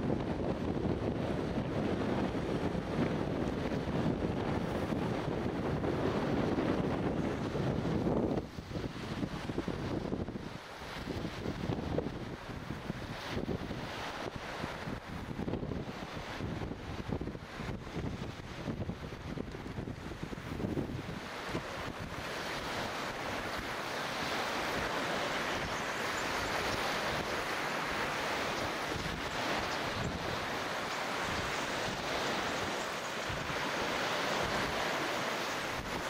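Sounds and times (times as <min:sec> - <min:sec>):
small waves washing on shore: 0:00.0 - 0:36.0
wind buffeting microphone: 0:00.0 - 0:36.0.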